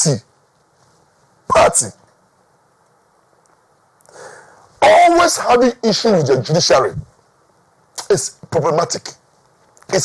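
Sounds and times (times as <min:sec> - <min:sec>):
man speaking: 0:00.0 - 0:00.2, 0:01.5 - 0:02.0, 0:04.8 - 0:07.1, 0:08.0 - 0:09.2
man breathing in: 0:04.1 - 0:04.7.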